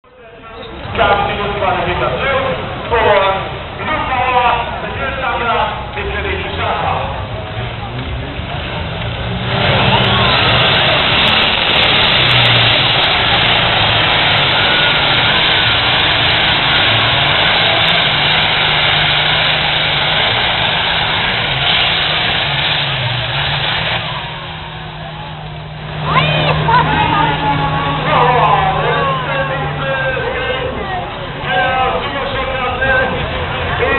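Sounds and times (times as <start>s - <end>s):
tractor engine at full throttle: 0.4s - 33.9s.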